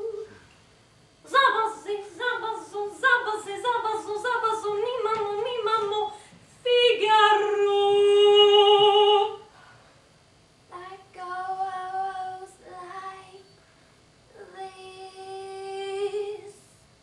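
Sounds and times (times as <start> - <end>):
young woman singing: 1.2 - 9.5, 10.7 - 13.6, 14.3 - 16.7.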